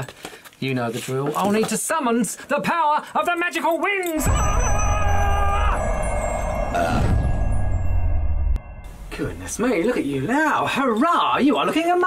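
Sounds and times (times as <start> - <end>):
held chime tones: 3.7 - 10.2.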